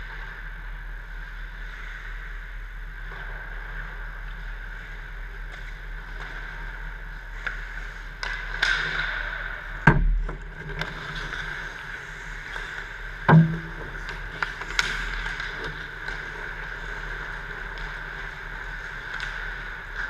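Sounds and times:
steady background hum: 0.0s - 20.0s
hockey sticks and puck clacking: 7.4s - 20.0s
loud hockey hits: 13.3s - 14.0s.

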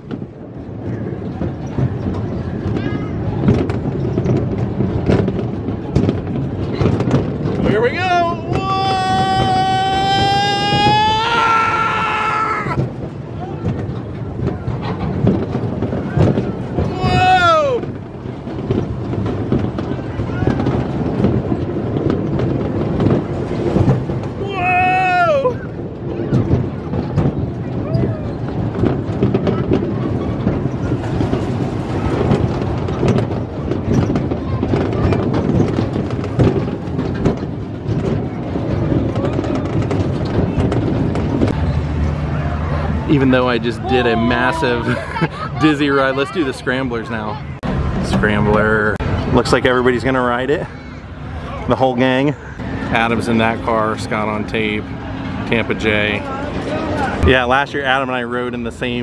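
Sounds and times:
amusement ride rumble and clatter: 0.0s - 59.0s
rider whooping: 7.7s - 12.8s, 16.8s - 18.0s, 24.3s - 25.8s.

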